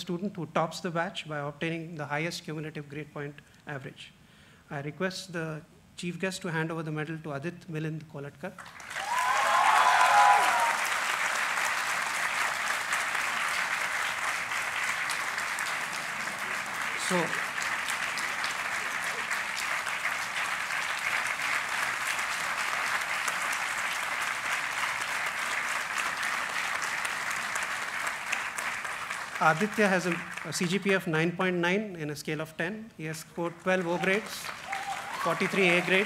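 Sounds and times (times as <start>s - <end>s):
audience applauding: 8.6s - 31.1s, 33.7s - 36.0s.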